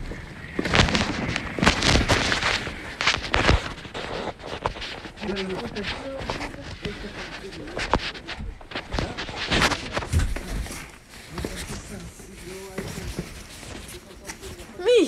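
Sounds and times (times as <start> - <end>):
knocks and rustles: 0.5 - 14.7.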